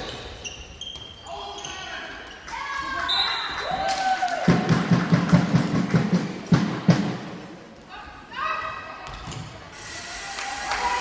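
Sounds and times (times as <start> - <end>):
shoes squeaking on hall floor: 0.0 - 3.6.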